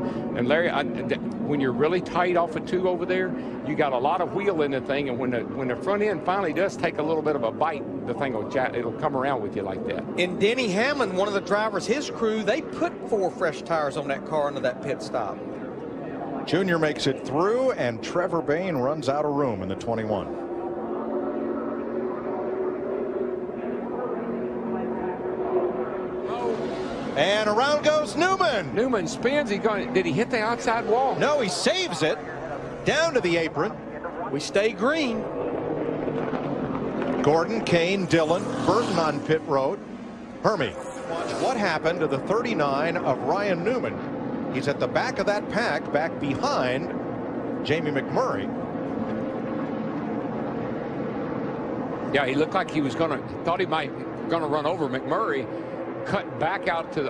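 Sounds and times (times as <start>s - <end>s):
stock car engines racing: 0.0s - 57.0s.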